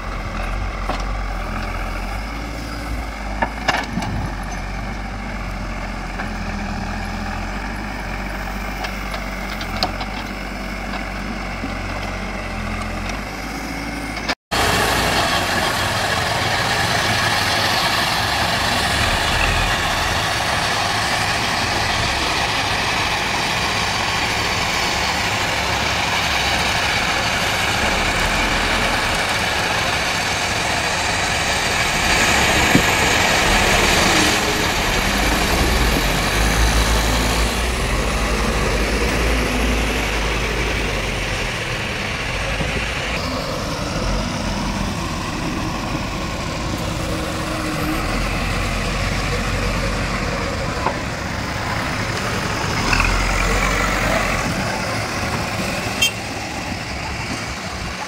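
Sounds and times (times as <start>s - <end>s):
diesel engines running: 0.0s - 58.0s.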